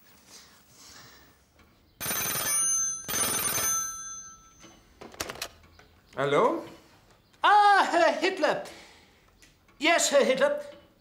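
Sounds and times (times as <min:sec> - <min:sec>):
telephone bell ringing: 0:02.0 - 0:04.9.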